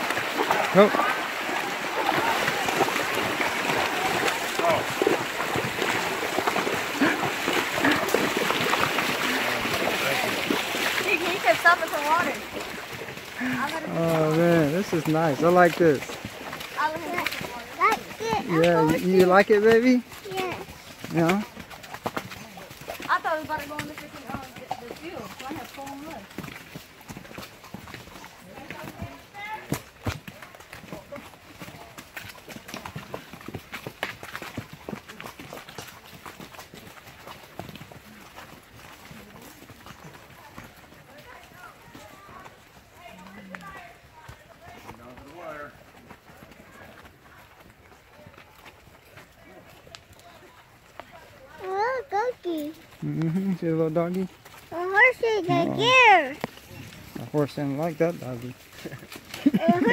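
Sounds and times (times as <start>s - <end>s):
horse hooves clopping on trail: 0.0s - 59.9s
riders' voices: 0.4s - 5.2s, 6.9s - 8.2s, 9.0s - 12.6s, 13.3s - 21.6s, 52.6s - 59.9s.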